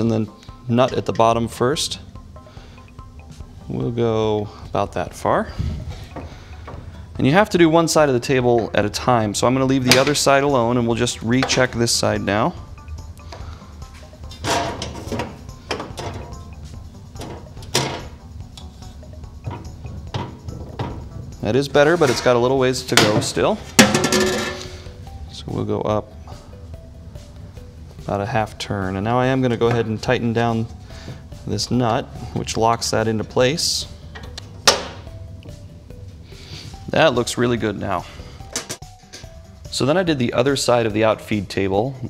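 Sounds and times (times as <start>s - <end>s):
quiet background music: 0.0s - 42.0s
spirit level knocking and scraping metal: 14.2s - 16.5s, 17.1s - 24.8s.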